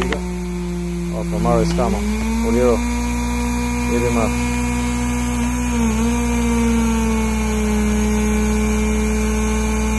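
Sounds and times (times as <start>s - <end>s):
hydraulic power pack engine droning: 0.0s - 9.9s.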